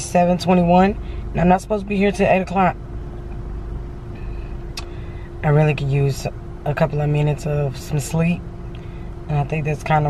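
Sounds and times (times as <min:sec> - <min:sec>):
car cabin hum and rumble: 0:00.0 - 0:10.0.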